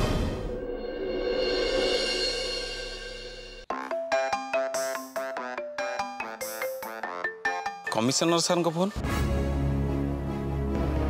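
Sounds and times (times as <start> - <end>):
background music: 0.0 - 11.0
mobile phone ringtone: 3.7 - 8.2.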